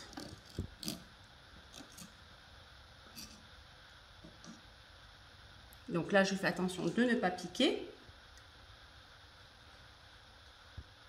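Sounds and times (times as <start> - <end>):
knife and fork scraping on wood: 0.0 - 1.1, 1.7 - 2.2.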